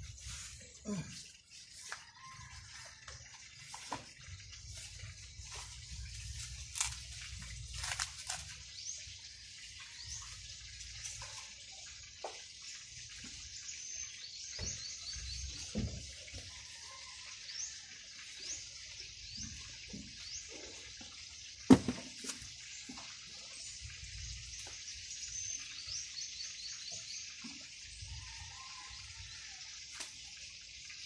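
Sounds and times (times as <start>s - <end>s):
coconut husks knocking: 21.7s - 22.4s.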